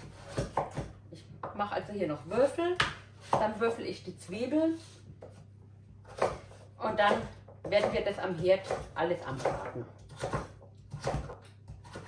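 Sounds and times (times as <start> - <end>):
knife cutting squash on board: 0.0 - 1.0, 6.0 - 12.0.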